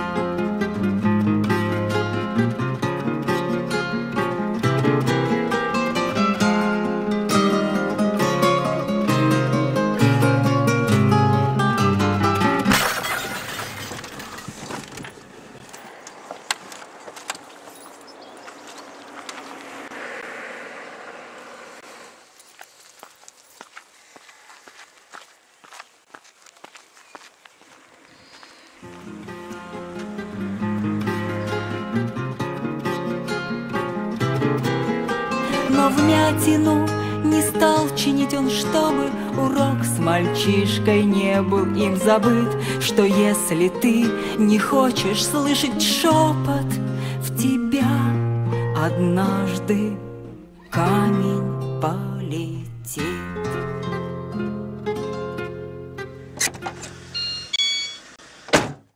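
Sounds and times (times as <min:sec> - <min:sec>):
plucked-string instrumental music: 0:00.0 - 0:13.1, 0:28.8 - 0:57.4
glass breaking crash: 0:12.7 - 0:14.6.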